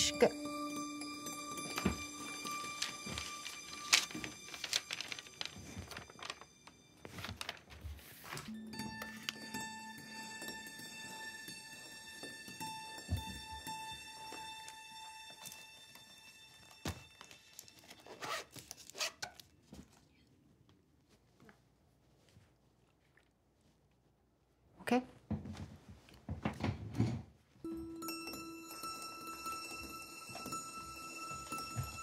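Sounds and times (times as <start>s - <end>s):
background score held tones: 0.0s - 18.5s, 27.6s - 32.0s
paper rustling: 1.8s - 9.3s, 16.9s - 20.0s.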